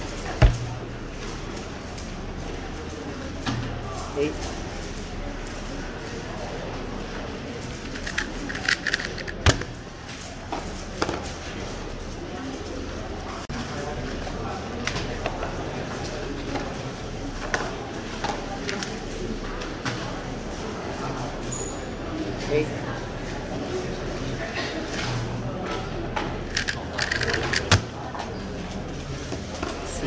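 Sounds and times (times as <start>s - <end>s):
chatter of a busy hall: 0.0s - 30.0s.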